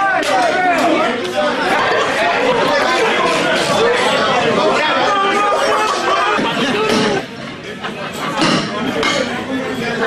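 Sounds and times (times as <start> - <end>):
men talking excitedly: 0.0 - 10.0.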